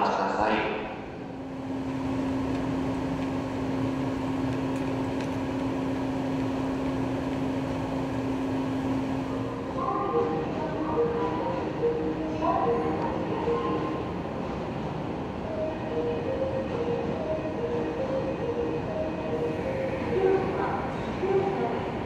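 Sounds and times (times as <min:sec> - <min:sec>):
station background noise: 0:00.0 - 0:22.0
train electrical hum: 0:00.0 - 0:22.0.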